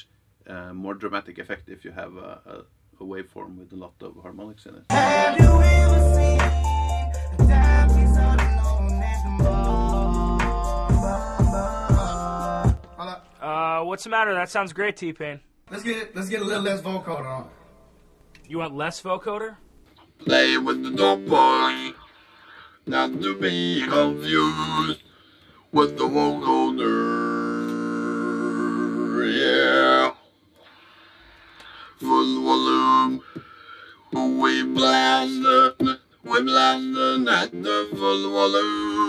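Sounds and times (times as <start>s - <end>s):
man's voice: 1.9s - 6.7s
vocoder-style singing: 4.9s - 13.1s, 20.0s - 30.3s, 31.6s - 39.0s
deep bass: 5.4s - 12.8s.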